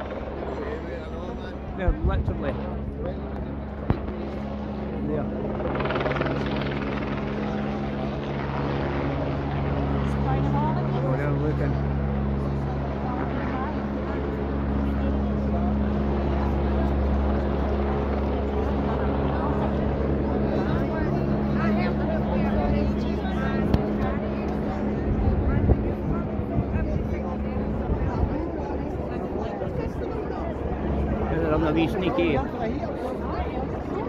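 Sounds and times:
helicopter rotor and engine drone: 0.0 - 34.0.

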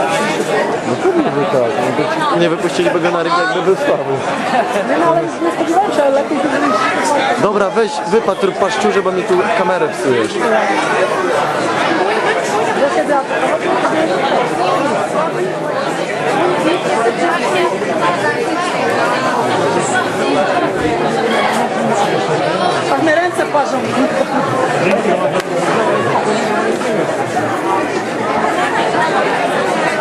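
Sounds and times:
crowd chatter in large hall: 0.0 - 30.0.

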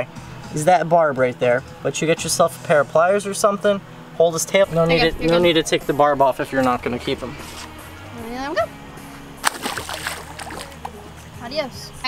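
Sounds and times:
steady low hum: 0.0 - 12.0
small splashes and drips: 9.4 - 11.0
stingray splashing into water: 9.4 - 11.0.

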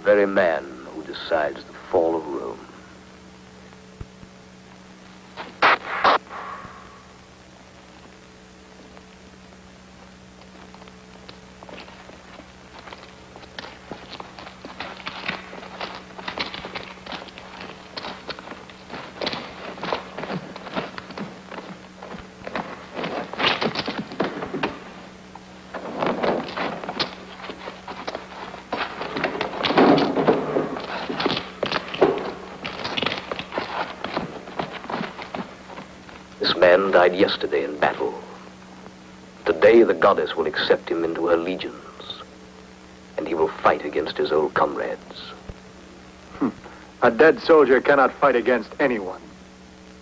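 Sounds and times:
low steady hum: 0.0 - 50.0.

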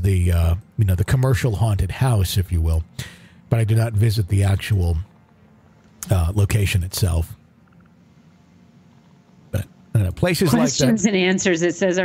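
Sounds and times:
faint steady background hum: 0.0 - 12.0
person speaking: 6.0 - 7.4, 9.6 - 11.1.

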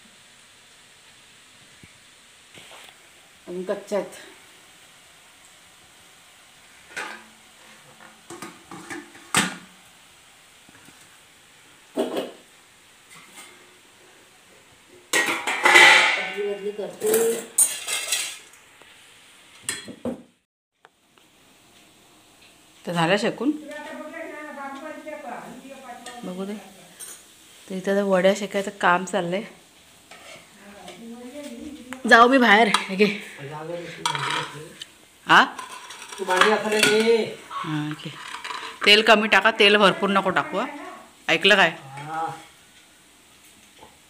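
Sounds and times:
steel pots and spoon clattering: 15.1 - 18.5, 33.9 - 34.7, 35.4 - 37.3, 38.1 - 40.1
people talking: 16.2 - 17.5, 22.9 - 27.0, 27.7 - 29.6, 30.6 - 35.6, 36.2 - 38.2, 38.8 - 42.5.

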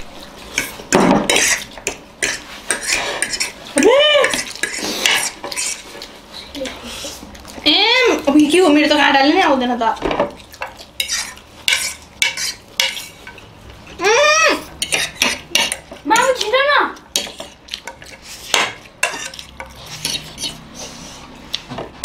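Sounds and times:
forks clinking against plates: 17.2 - 20.6.

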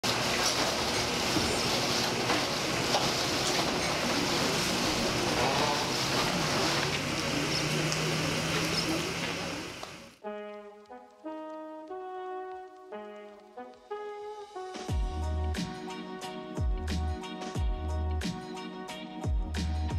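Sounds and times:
cooling fan noise: 0.0 - 10.2.

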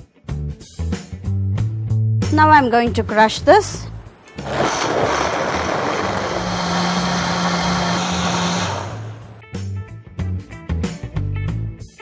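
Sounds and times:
blender whirring: 4.3 - 9.4.

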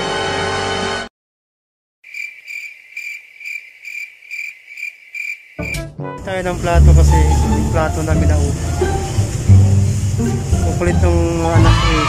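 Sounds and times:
cricket chirping: 2.0 - 5.8.

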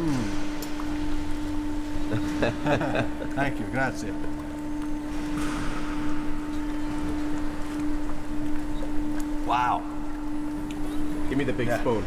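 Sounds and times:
steady machine hum: 0.0 - 12.0.

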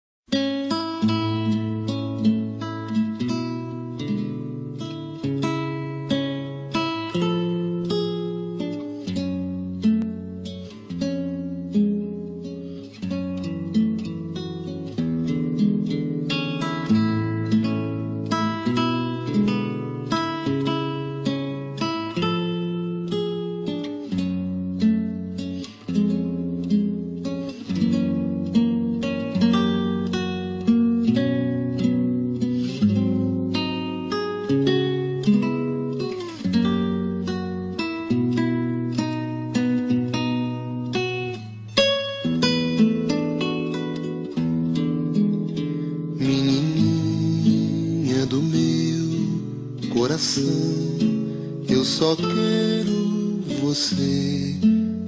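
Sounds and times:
acoustic guitar playing: 0.3 - 55.0.

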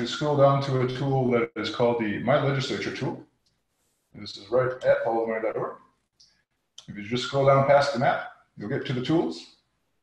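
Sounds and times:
man speaking: 0.0 - 3.3, 4.2 - 5.8, 6.8 - 9.6.

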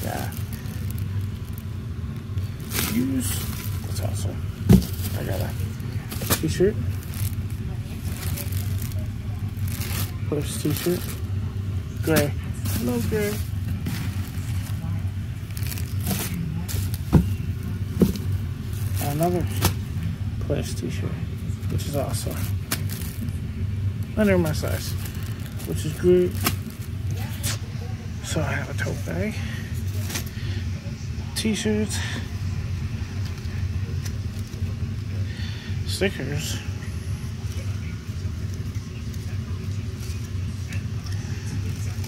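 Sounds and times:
plastic packaging crinkling: 0.0 - 20.0, 21.6 - 23.4, 24.0 - 27.6
steady low hum: 0.0 - 42.0
steady low rumble: 0.0 - 42.0.

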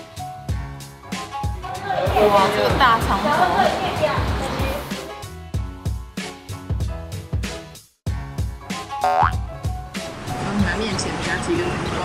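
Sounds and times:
background music: 0.0 - 12.0
rising cartoon boing effect: 9.0 - 9.4.

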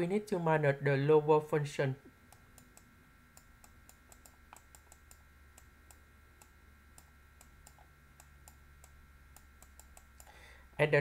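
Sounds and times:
low steady hum: 0.0 - 11.0
faint irregular clicks: 2.3 - 10.4.

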